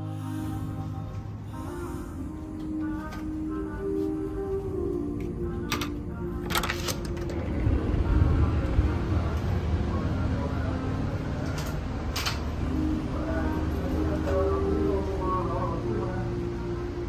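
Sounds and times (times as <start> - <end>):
low rumble of movement: 0.0 - 17.0
soft background music: 0.0 - 17.0.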